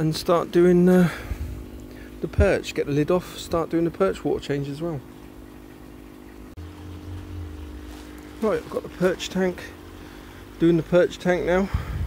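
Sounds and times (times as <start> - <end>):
electric motor hum: 4.8 - 12.0.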